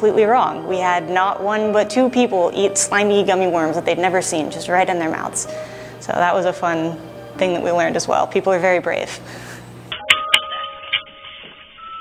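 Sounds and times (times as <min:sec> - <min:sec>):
chime-like electronic tones: 0:09.9 - 0:12.0.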